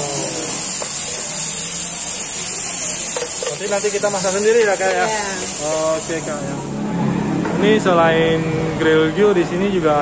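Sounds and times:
meat sizzling on a grill plate: 0.0 - 6.8.

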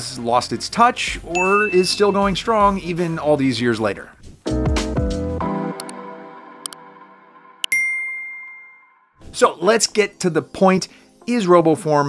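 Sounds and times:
bright bell-like ding: 1.4 - 2.4, 7.7 - 9.0.

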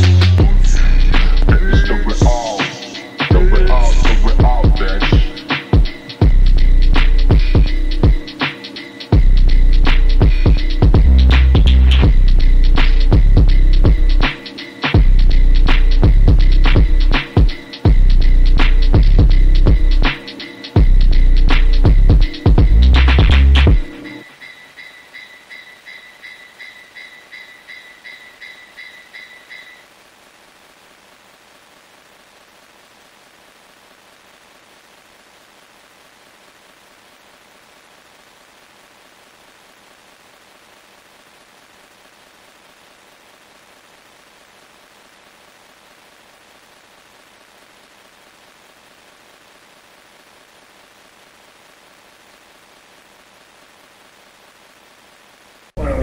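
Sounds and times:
steady faint hiss: 0.0 - 56.0.

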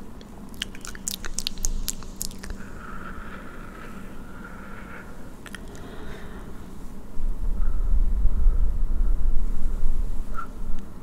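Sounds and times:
faint low hum: 0.0 - 11.0
soft steady hiss: 0.0 - 11.0
wet mouth clicks and lip smacks: 0.1 - 2.8, 5.4 - 5.9.

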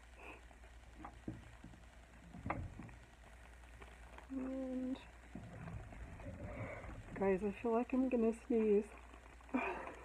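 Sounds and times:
light clicks and knocks: 1.0 - 3.0.

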